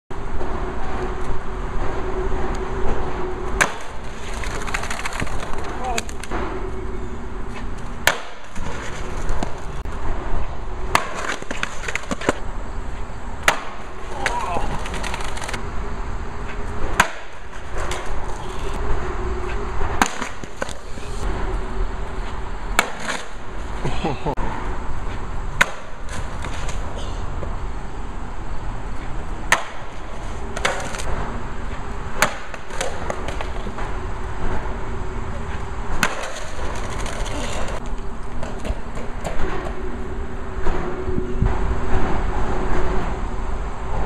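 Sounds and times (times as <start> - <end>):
skateboard wheels rolling on concrete: 0.1 - 44.0
skateboard clacking on concrete: 3.6 - 6.3, 7.8 - 9.7, 10.9 - 12.4, 13.4 - 15.6, 22.8 - 23.4, 29.5 - 31.1, 32.2 - 33.8, 35.5 - 39.8.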